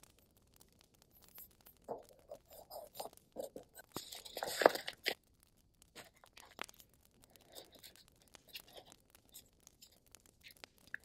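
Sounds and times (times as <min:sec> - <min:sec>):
paper rustling: 0:01.2 - 0:05.2.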